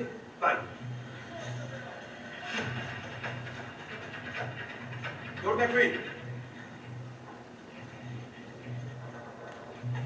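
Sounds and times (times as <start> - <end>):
hissy ambience: 0.0 - 10.0
steady low hum: 0.0 - 10.0.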